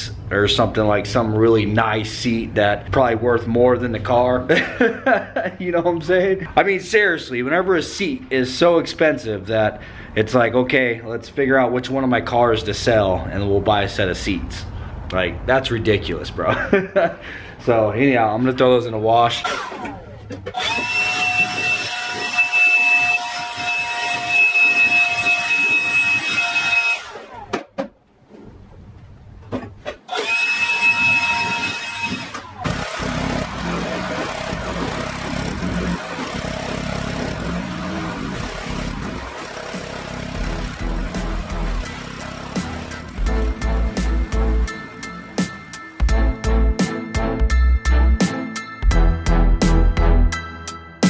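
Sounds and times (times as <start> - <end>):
leaf blower high-pitched whine: 19.4 - 27.5, 30.1 - 46.1.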